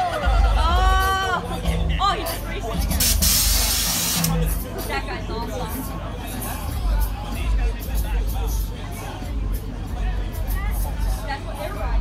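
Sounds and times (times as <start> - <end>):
voices: 0.0 - 12.0
sharp hiss: 3.0 - 4.3.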